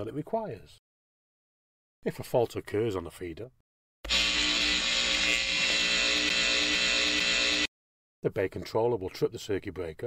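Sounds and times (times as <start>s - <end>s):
harsh electrical buzz: 4.0s - 7.7s.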